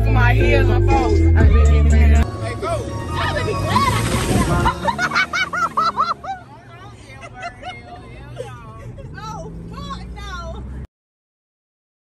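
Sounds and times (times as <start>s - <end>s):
music: 0.0s - 4.7s.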